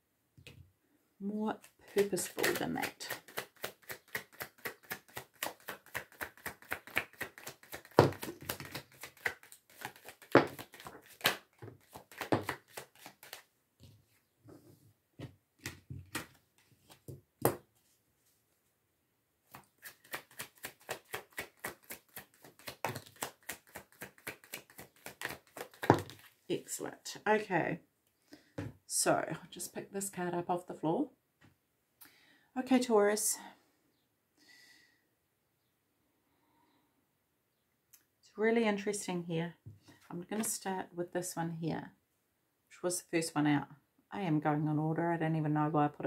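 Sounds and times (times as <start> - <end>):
cards being shuffled: 1.6 - 13.5, 15.6 - 17.9, 19.5 - 26.4.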